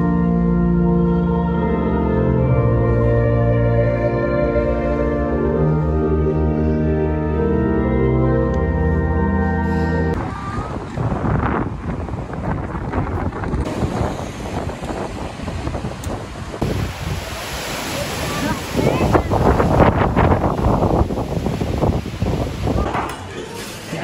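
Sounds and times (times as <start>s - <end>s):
wind buffeting microphone: 10.2s - 23.0s.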